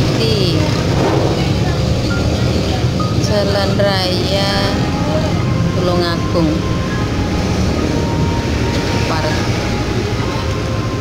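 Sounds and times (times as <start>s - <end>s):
loud low rumble: 0.4s - 3.9s.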